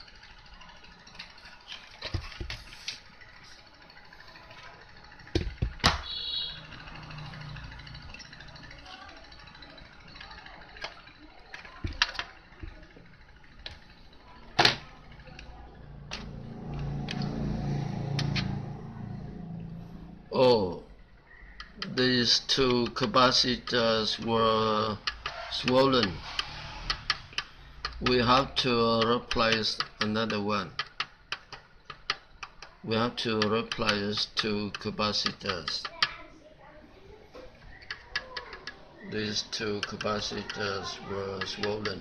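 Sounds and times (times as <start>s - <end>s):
low rumbling hum: 0.0s - 21.6s.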